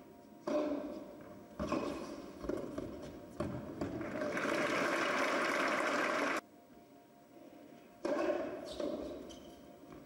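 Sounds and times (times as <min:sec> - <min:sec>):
quiet arena background: 0:00.0 - 0:10.0
spectators applauding: 0:04.1 - 0:06.4.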